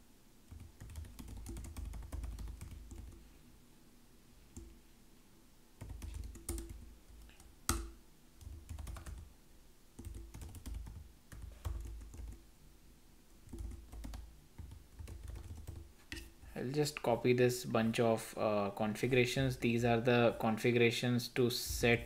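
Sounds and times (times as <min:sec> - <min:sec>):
typing on computer keyboard: 0:00.5 - 0:03.2, 0:05.8 - 0:09.3, 0:10.0 - 0:12.4, 0:13.5 - 0:15.9.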